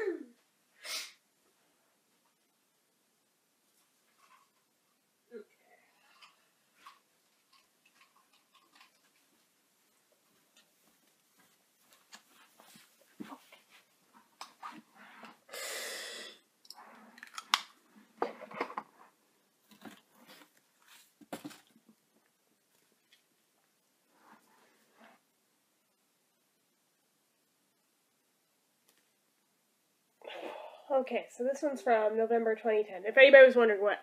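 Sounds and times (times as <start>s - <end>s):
handling clicks and rustles: 6.1s - 15.4s
inhaler hiss: 15.5s - 16.4s.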